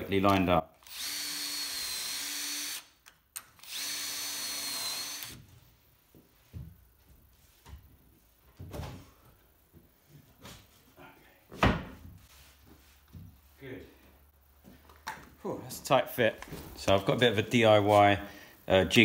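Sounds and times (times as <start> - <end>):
drill whining through metal: 0.8 - 3.0, 3.6 - 5.4.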